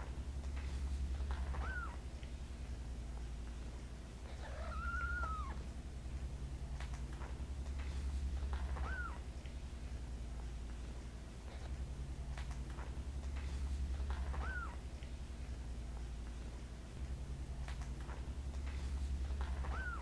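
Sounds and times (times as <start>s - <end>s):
steady low hum: 0.0s - 20.0s
cat meowing: 1.3s - 2.0s, 4.3s - 5.6s, 8.6s - 9.2s, 14.3s - 14.8s, 19.6s - 20.0s.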